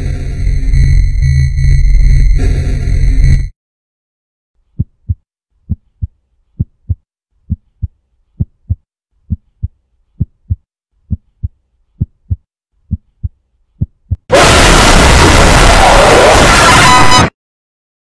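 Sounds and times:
heartbeat thumps: 0:04.8 - 0:14.3.

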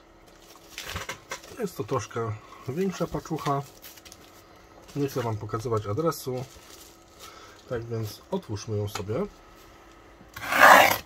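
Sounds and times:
plastic film rubbing scrape: 0:10.4 - 0:11.0.

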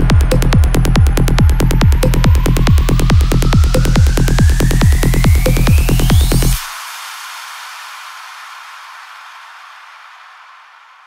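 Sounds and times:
white noise hiss: 0:06.6 - 0:11.0.

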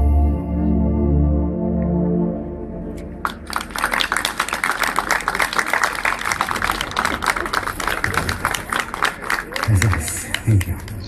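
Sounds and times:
crowd applauding: 0:03.2 - 0:11.0.

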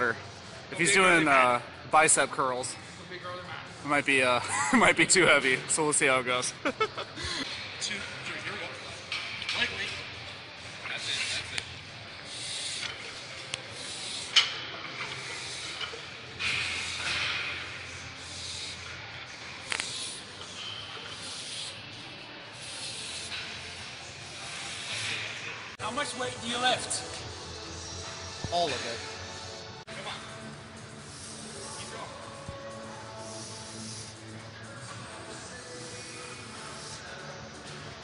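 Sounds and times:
forceful hissing breaths: 0:09.9 - 0:25.8, 0:26.9 - 0:38.0.

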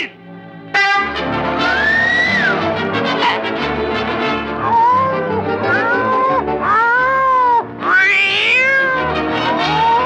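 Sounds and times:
orchestral cartoon music: 0:00.0 - 0:10.0
cartoon cat meow rising to yowl: 0:04.6 - 0:10.0.

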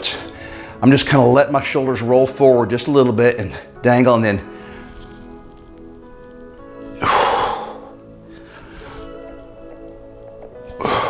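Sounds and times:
background music: 0:00.0 - 0:11.0
man exhaling forcefully: 0:07.0 - 0:08.0.

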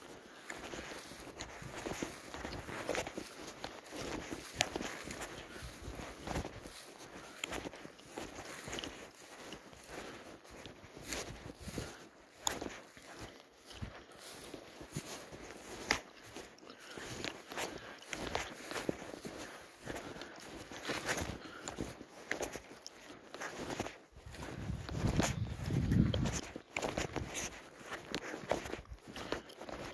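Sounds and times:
footsteps through dry grass: 0:00.0 - 0:29.9.

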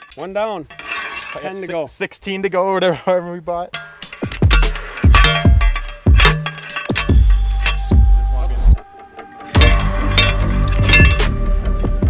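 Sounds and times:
post driver clanging on steel: 0:00.0 - 0:01.7, 0:03.7 - 0:11.4
background music: 0:04.0 - 0:12.0.

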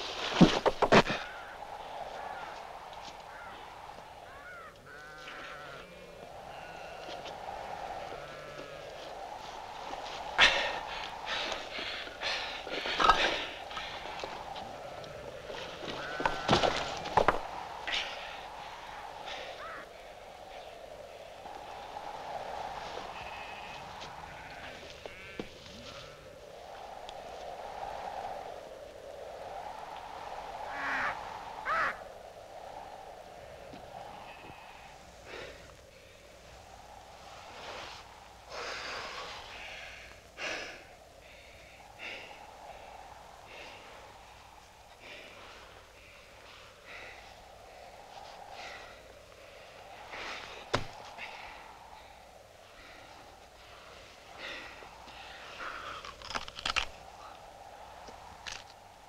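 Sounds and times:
wind moaning: 0:00.0 - 0:59.0.

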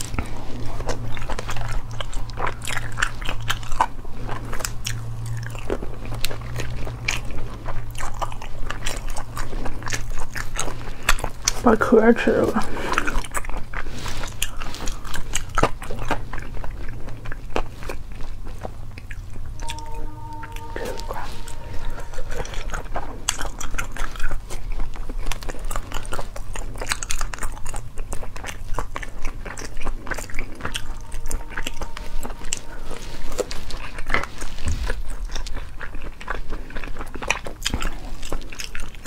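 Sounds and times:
wet biting and chewing: 0:00.0 - 0:11.6, 0:12.6 - 0:19.7, 0:22.4 - 0:39.0
low steady hum: 0:00.0 - 0:39.0.

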